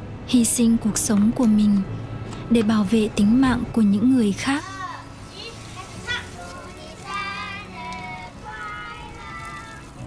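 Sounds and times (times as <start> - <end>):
children singing together: 6.0 - 10.0.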